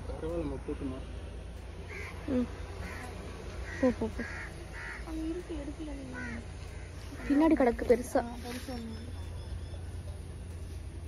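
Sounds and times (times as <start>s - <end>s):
crows cawing: 1.8s - 8.2s.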